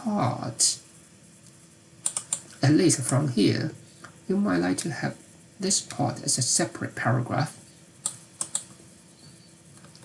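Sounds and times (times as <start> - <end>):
keyboard keystroke clicks: 2.0 - 2.6, 8.0 - 8.8.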